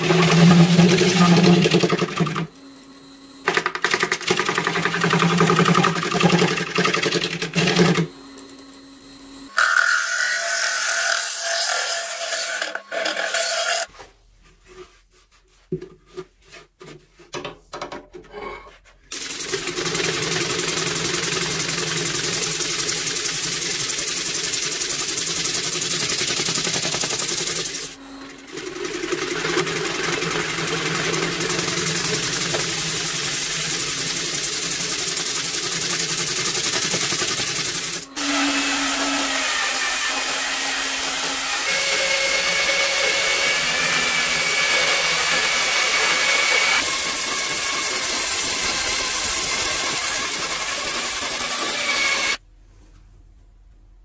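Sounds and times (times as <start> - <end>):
wood lathe humming: 0.0 - 13.9, 19.1 - 52.4.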